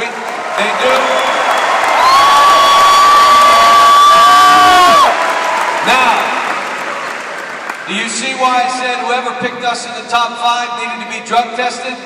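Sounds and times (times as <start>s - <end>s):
crowd cheering and shouting: 0.0s - 8.5s.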